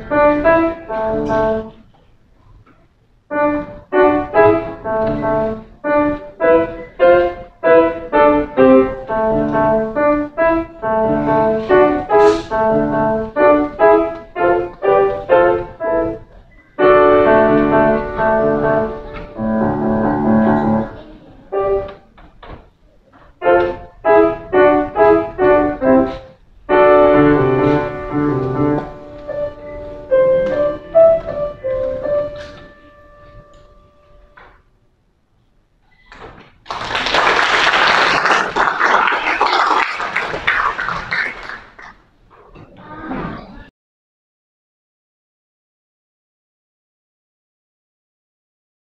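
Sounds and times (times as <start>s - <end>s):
grand piano playing: 0.0s - 1.8s, 3.3s - 22.2s, 23.4s - 34.6s
audience applauding: 36.6s - 42.0s.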